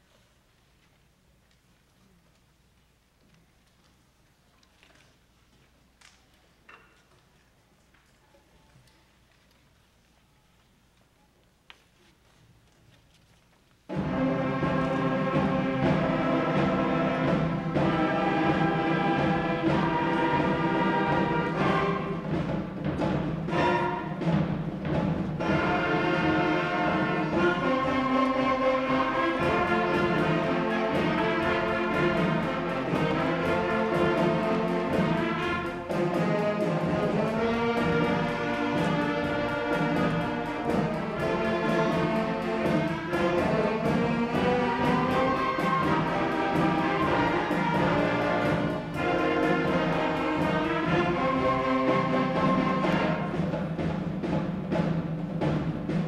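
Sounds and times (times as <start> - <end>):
brass and woodwinds chords: 13.9 - 22.4, 23.4 - 24.5, 25.4 - 53.6.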